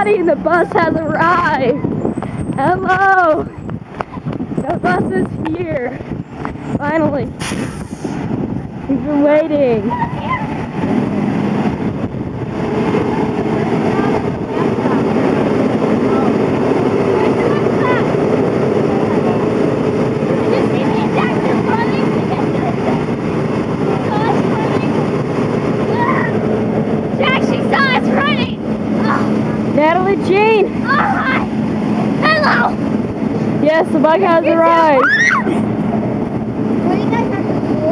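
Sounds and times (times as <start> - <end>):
children's voices: 0.0 - 6.1, 8.8 - 11.0, 13.3 - 35.9, 36.7 - 37.9
bus engine idling: 0.0 - 37.9.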